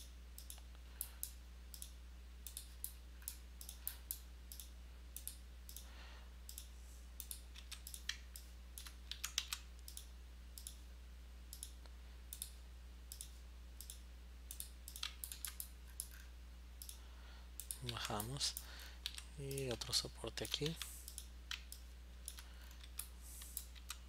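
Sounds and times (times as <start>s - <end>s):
low electrical hum: 0.0s - 24.0s
computer mouse clicks: 0.4s - 5.9s, 6.5s - 10.8s, 11.5s - 17.0s, 17.6s - 24.0s.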